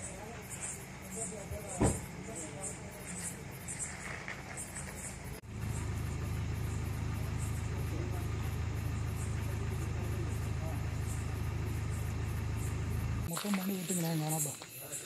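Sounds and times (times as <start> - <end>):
car engine idling: 0.0 - 14.6.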